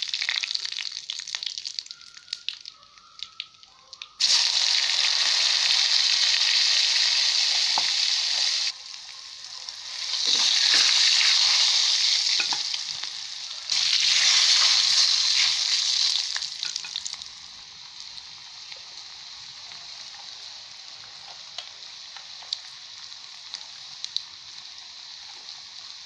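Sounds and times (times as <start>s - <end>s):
food sizzling in hot oil: 0.0s - 3.4s, 4.2s - 26.0s.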